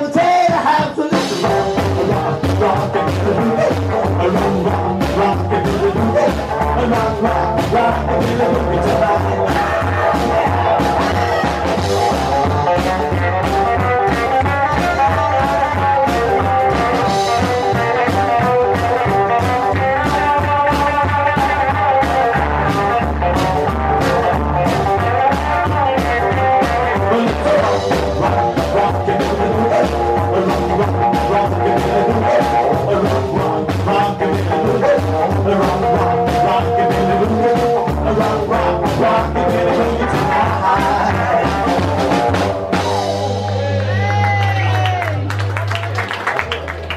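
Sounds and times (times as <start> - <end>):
live rockabilly band playing: 0.0 - 46.9
electric guitar: 0.8 - 46.9
upright double bass: 1.1 - 46.9.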